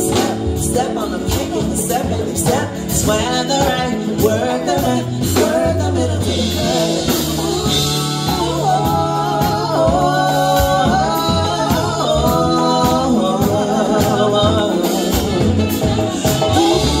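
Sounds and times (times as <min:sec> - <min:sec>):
bass: 0:00.0 - 0:17.0
keyboard: 0:00.0 - 0:17.0
person singing: 0:00.0 - 0:17.0
steady drum beat: 0:00.0 - 0:17.0.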